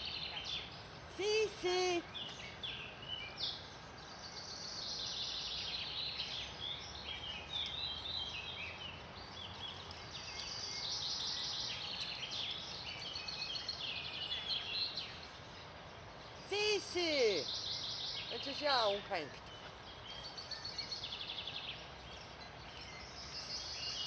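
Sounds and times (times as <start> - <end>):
birds chirping and trilling: 0.0 - 24.0
outdoor background noise: 0.0 - 24.0.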